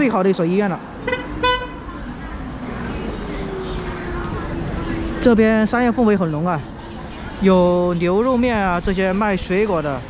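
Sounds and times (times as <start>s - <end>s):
street traffic noise: 0.0s - 10.0s
vehicle horn toot: 1.0s - 1.8s.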